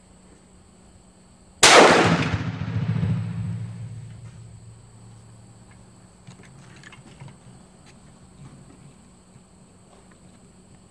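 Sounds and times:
shotgun shot echoing: 0:01.6 - 0:04.6.

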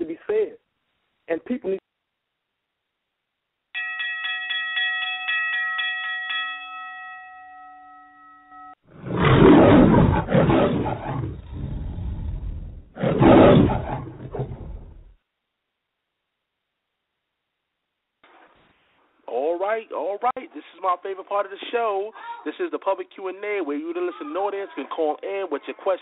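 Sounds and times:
rapid bell-like chimes: 0:03.8 - 0:08.8
lion roars: 0:08.9 - 0:15.2.

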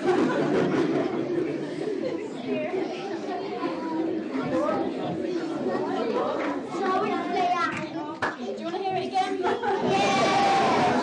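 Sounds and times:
chatter of children and adults: 0:00.0 - 0:11.0.

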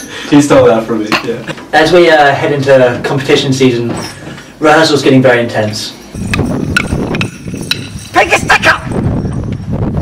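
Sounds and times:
small bells jingling: 0:05.4 - 0:09.5
wind rumble on microphone: 0:06.1 - 0:10.0.

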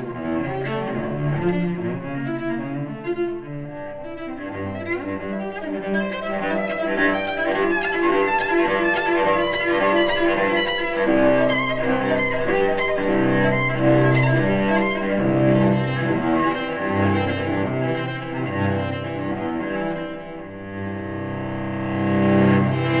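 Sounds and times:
bowed cello: 0:00.0 - 0:23.0.

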